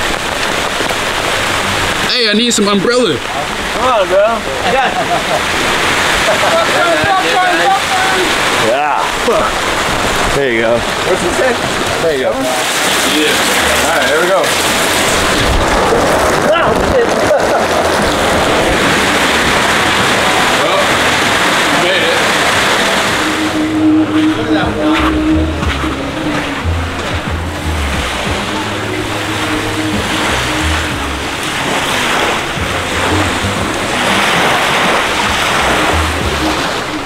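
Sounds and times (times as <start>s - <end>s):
heavy rain hitting a hat: 0.0s - 37.0s
music with low bass line: 12.7s - 37.0s.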